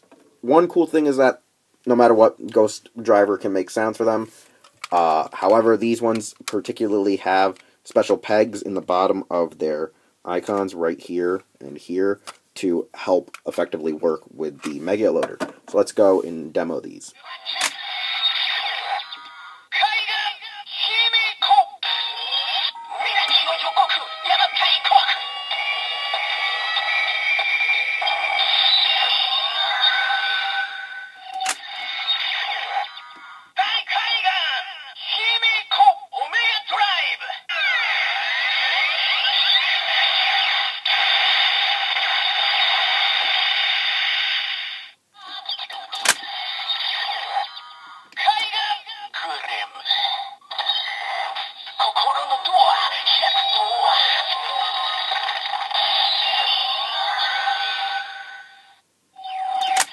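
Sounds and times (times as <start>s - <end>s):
toy electronic voice calls: 17.1s - 59.9s
tinny toy music: 17.2s - 33.2s, 41.8s - 59.9s
sharp plastic clicks: 46.0s - 46.3s, 59.6s - 59.9s.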